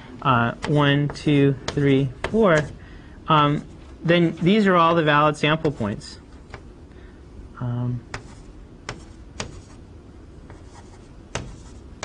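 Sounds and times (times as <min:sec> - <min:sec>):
chalk tapping on blackboard: 0:00.6 - 0:02.8, 0:05.6 - 0:06.7, 0:08.1 - 0:09.8, 0:10.5 - 0:12.0.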